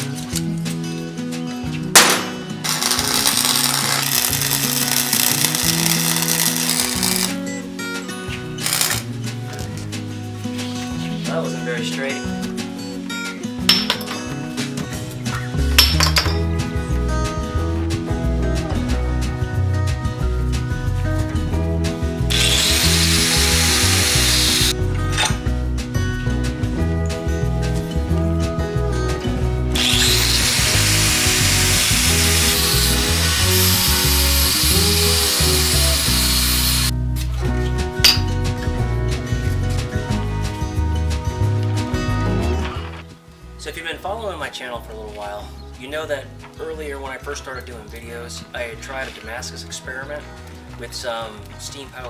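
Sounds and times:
background music: 0.0s - 52.0s
angle grinder grinding steel: 2.2s - 7.4s, 8.6s - 9.0s, 22.3s - 24.8s, 29.8s - 36.9s
bass line: 15.0s - 44.3s.

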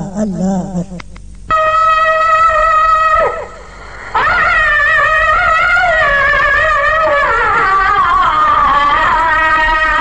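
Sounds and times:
man chanting in long held notes: 0.0s - 3.5s, 4.2s - 10.0s.

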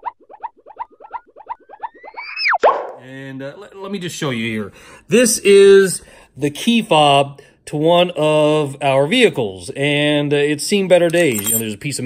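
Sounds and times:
synthesized bouncy blips: 0.0s - 2.8s.

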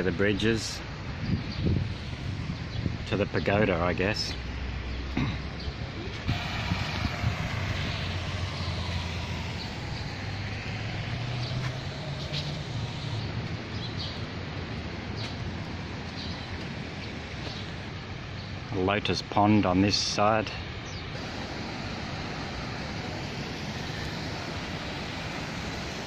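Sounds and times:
rushing outdoor noise: 0.0s - 26.0s
passing motor vehicle drone: 6.2s - 14.8s, 21.2s - 26.0s.

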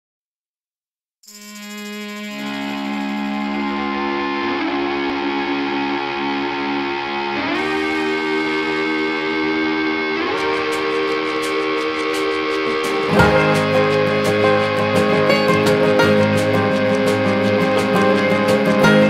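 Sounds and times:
sustained instrumental chords: 1.6s - 19.0s.

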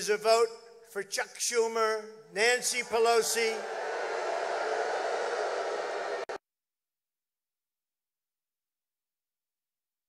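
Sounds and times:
large crowd voices: 3.2s - 6.4s.

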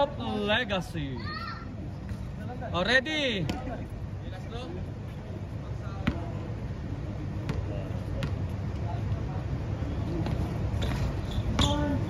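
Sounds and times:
basketball bouncing on concrete: 6.0s - 6.4s, 7.4s - 8.5s, 10.2s - 12.0s.

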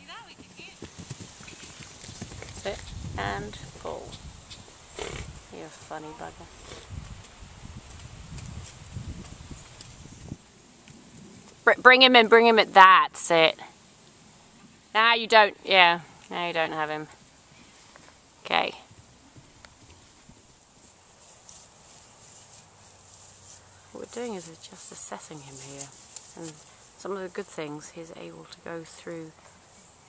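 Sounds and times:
horse hoofbeats on grass: 0.0s - 11.6s, 19.3s - 27.8s.

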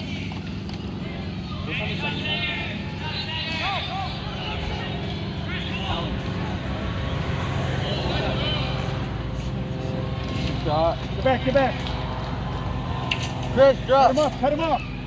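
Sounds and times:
distant shouts and calls: 0.0s - 15.0s.

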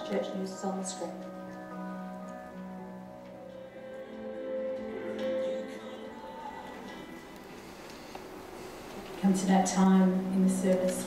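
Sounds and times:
soft instrumental band music: 0.0s - 9.0s.

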